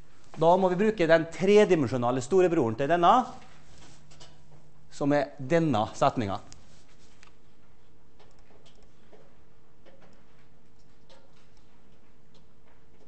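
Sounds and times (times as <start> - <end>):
faint steady hum: 0.0 - 13.0.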